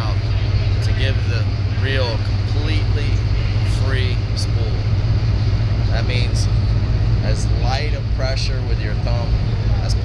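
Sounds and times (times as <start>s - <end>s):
boat engine idling: 0.0s - 10.0s
faint voices: 0.0s - 10.0s.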